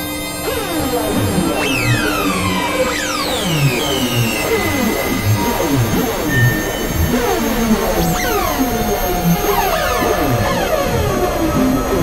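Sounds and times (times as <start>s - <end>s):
harsh synthesizer noise music: 1.4s - 12.0s
high pitch sweep dropping: 2.0s - 12.0s
short downward synth glides: 2.8s - 12.0s.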